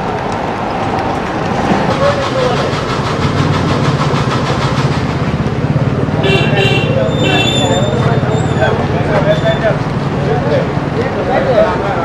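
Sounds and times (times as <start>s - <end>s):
street traffic noise: 0.0s - 12.0s
small vehicle engine running: 1.8s - 6.6s
vehicle horn: 6.2s - 8.0s.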